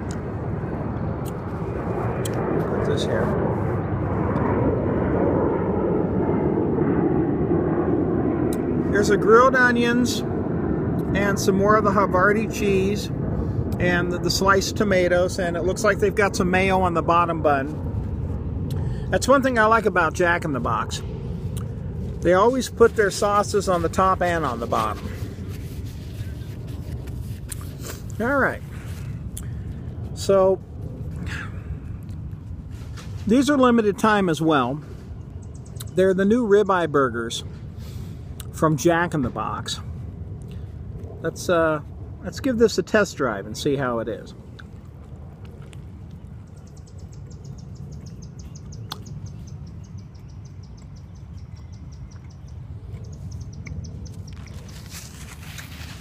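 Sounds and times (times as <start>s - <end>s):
distant aircraft: 0.0s - 56.0s
distant traffic: 0.0s - 56.0s
low background rumble: 0.0s - 56.0s
hands rustling near microphone: 21.4s - 29.2s, 54.1s - 56.0s.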